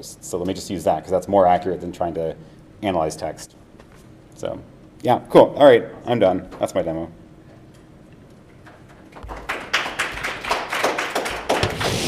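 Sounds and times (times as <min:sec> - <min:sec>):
small audience clapping: 0:08.7 - 0:12.0.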